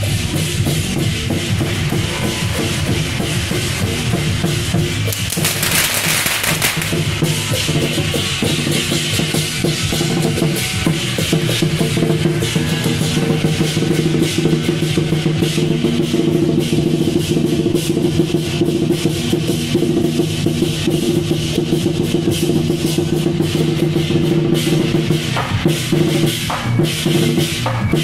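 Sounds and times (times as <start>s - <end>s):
crashing metal cymbals: 0.0s - 28.0s
large drums beating fast: 0.0s - 28.0s.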